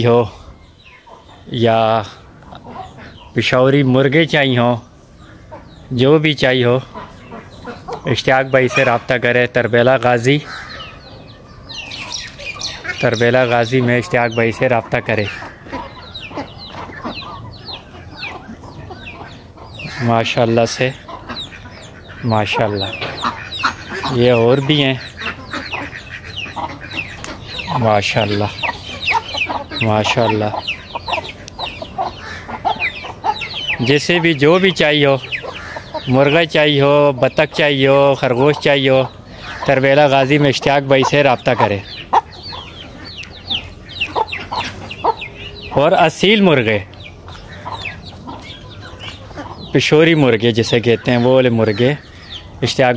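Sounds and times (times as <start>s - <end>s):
chickens clucking: 0.0s - 52.9s
chicks peeping: 0.0s - 52.9s.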